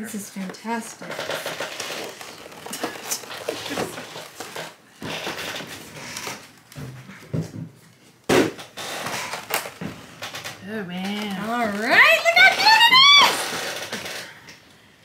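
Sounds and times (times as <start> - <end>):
plastic crackling: 0.0 - 6.8, 8.6 - 14.6
rustling: 0.1 - 6.7.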